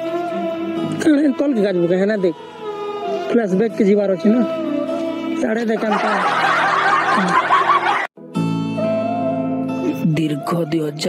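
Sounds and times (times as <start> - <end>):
people snickering and chuckling: 5.8 - 8.1.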